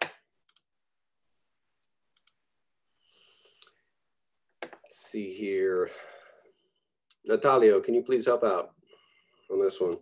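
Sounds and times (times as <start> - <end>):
computer clicks: 0.0 - 0.7, 2.1 - 2.4.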